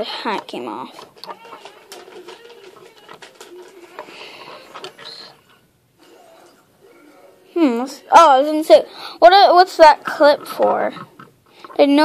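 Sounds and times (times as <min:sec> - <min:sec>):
plastic toy pieces clicking: 0:00.4 - 0:05.3.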